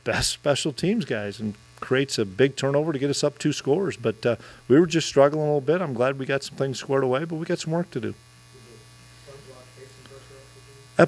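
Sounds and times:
low electrical buzz: 0.0 - 11.0.

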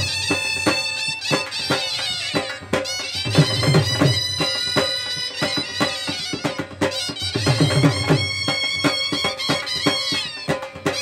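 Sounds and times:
reed pipe melody: 0.0 - 11.0.

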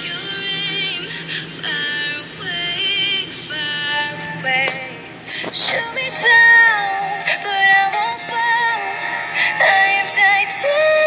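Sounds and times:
woman singing pop song: 0.0 - 11.0.

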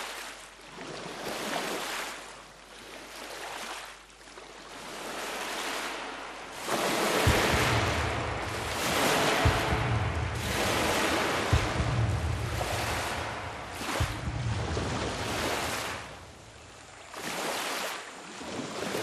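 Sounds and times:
waves rushing: 3.5 - 19.0
low rumble: 5.4 - 17.1.

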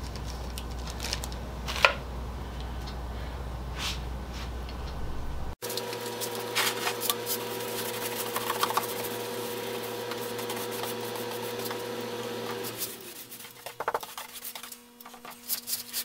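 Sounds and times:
machine hum with fixed tones: 1.3 - 16.0
paintbrush scraping and tapping: 5.8 - 11.9, 12.5 - 16.0.

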